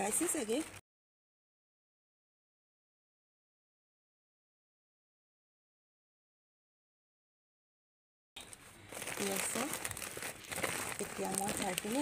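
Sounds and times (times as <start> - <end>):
plastic sack rustling: 8.4 - 12.0.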